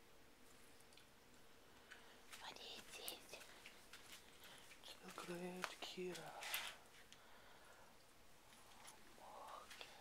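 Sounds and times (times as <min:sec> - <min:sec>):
faint steady hum: 0:00.0 - 0:10.0
person whispering: 0:02.3 - 0:03.6, 0:04.8 - 0:06.8, 0:08.8 - 0:10.0.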